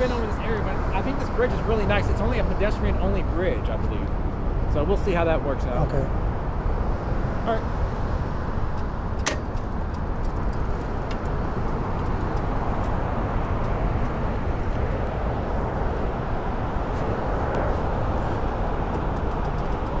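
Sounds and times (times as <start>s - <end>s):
traffic on road bridges: 0.0s - 20.0s
wind on microphone: 6.1s - 20.0s.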